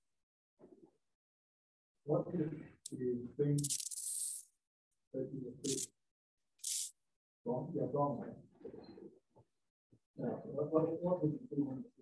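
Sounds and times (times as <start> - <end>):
person speaking: 5.4 - 6.0.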